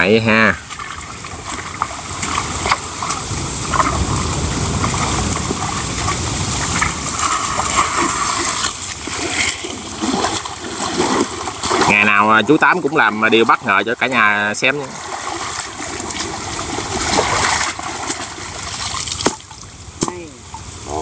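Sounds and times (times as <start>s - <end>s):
basket splashing in water: 0.6s - 13.8s, 14.6s - 20.6s.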